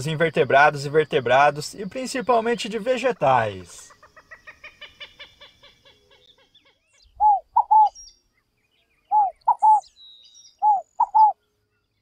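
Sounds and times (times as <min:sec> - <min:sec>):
dove calling: 0:00.0 - 0:08.1, 0:09.1 - 0:11.4
bird clucking: 0:03.4 - 0:07.9, 0:09.1 - 0:09.8, 0:10.6 - 0:11.4.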